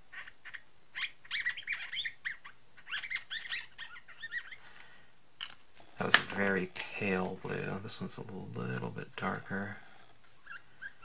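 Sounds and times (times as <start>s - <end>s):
marker squeaking on card: 0.0s - 5.0s, 10.3s - 11.0s.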